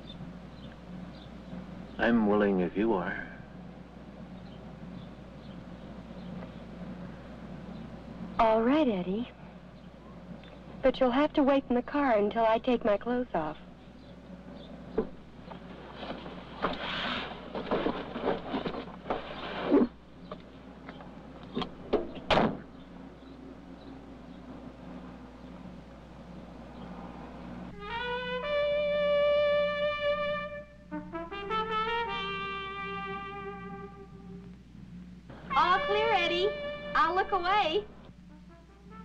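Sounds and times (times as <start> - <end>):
noise: 0.0 - 39.0
held brass notes: 23.4 - 34.6, 35.3 - 39.0.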